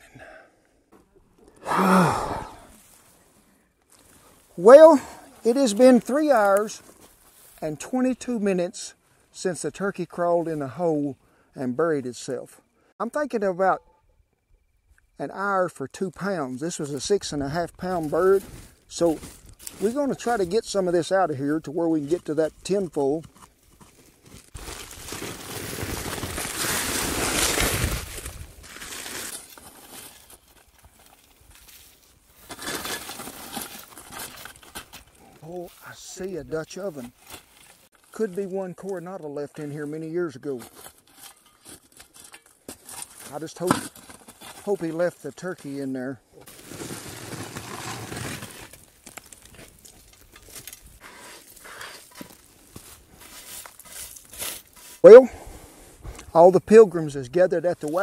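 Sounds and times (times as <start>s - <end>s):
shovel scraping dirt: 17.8s - 21.1s, 21.9s - 39.0s, 39.6s - 45.8s, 46.4s - 56.4s
foil being pulled back: 24.2s - 35.2s, 46.5s - 55.1s.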